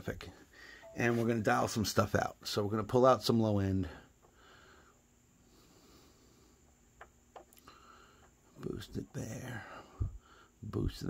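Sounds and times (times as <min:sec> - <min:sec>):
man speaking: 0:00.0 - 0:04.0, 0:08.6 - 0:09.9, 0:10.6 - 0:11.0
steady low hum: 0:00.0 - 0:11.0.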